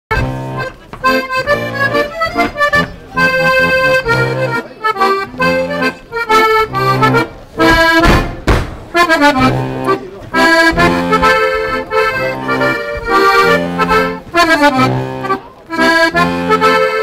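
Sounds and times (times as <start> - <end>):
accordions playing folk tune: 0.1 - 17.0.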